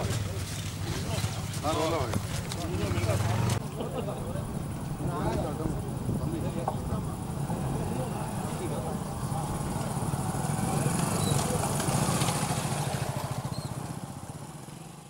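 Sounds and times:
motorcycle engines passing: 0.0 - 15.0
voices: 0.0 - 15.0.

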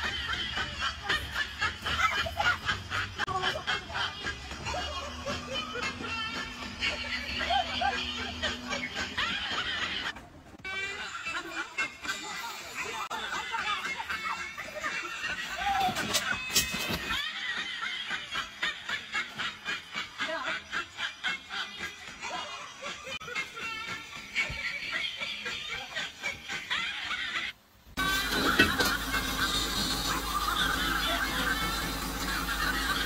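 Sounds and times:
high-pitched snickering laughter: 0.0 - 33.0.

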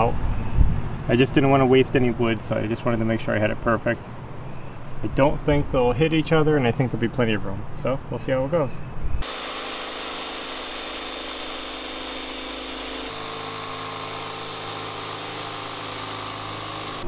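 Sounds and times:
jigsaw cutting plywood: 9.2 - 17.0.

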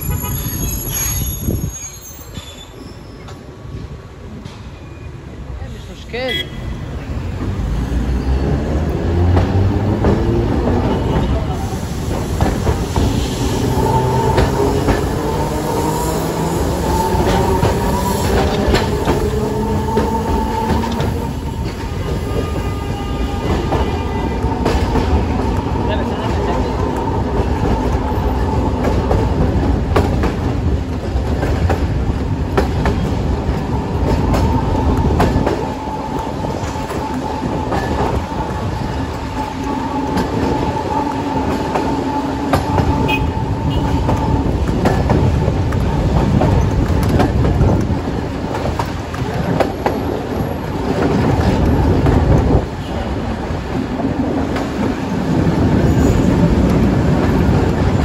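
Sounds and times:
tram wheels rumbling on rails: 0.0 - 58.0.

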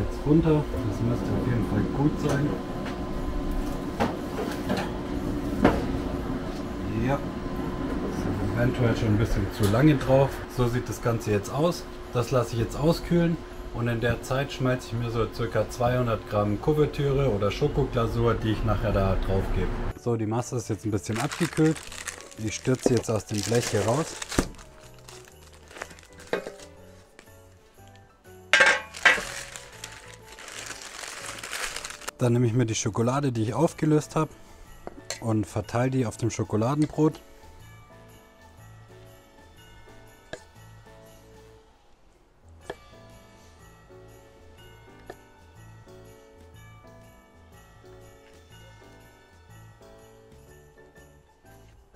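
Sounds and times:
soft background music: 0.0 - 51.9
metal tray knocking on grate: 28.6 - 29.2.

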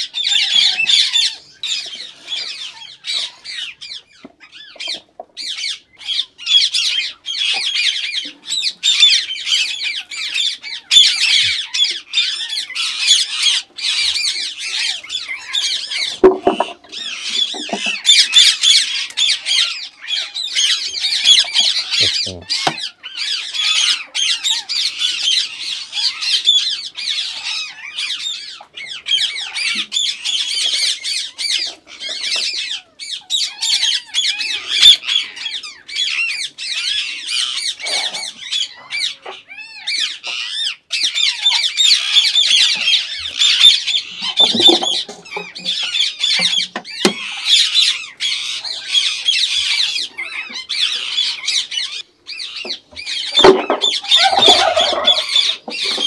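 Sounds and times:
parakeets squawking: 0.0 - 56.0.

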